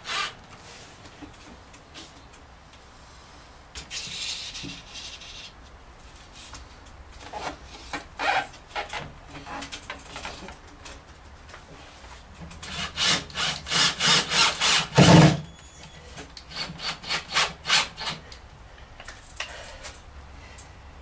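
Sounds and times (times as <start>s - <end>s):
cordless drill driving screws: 0.0s - 0.4s, 12.7s - 15.4s.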